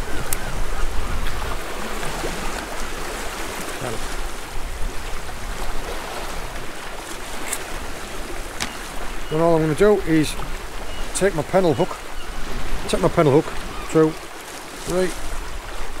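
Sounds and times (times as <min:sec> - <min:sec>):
wind rumble on microphone: 0:00.0 - 0:09.3
surf washing over rocks: 0:00.0 - 0:16.0.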